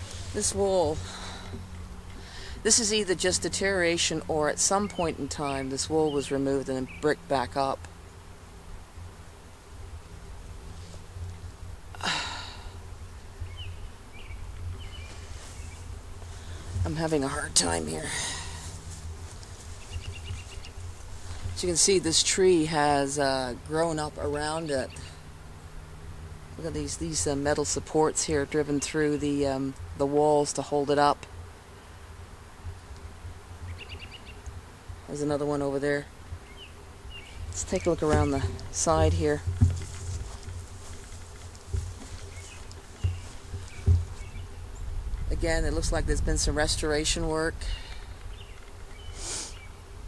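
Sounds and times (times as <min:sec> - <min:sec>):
low insect-like buzz: 0:00.0 - 0:50.0
small bird chirping: 0:19.8 - 0:20.8, 0:33.7 - 0:34.4
wind rumble on microphone: 0:41.7 - 0:48.6.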